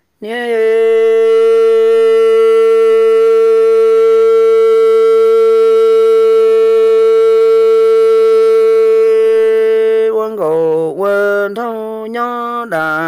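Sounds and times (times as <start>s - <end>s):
long held note with overtones: 0.7s - 10.0s.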